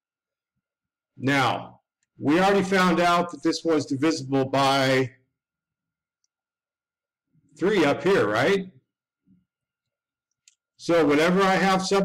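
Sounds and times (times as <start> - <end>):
man's voice: 1.2 - 5.1, 7.6 - 8.7, 10.8 - 12.0.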